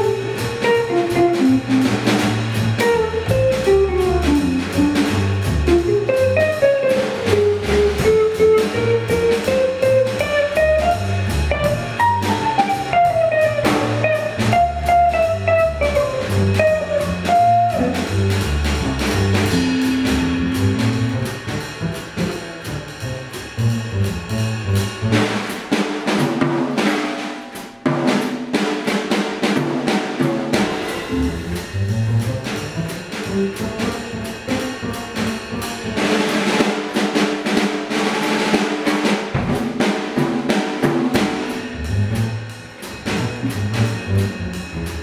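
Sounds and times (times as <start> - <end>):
low bass line: 0.0 - 25.4, 30.7 - 33.8, 41.6 - 45.0
jazz drumming: 0.0 - 45.0.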